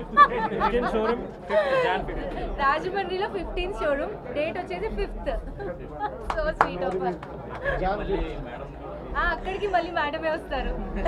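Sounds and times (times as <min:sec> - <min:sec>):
women laughing: 0:00.0 - 0:02.6
murmur of voices: 0:00.0 - 0:11.0.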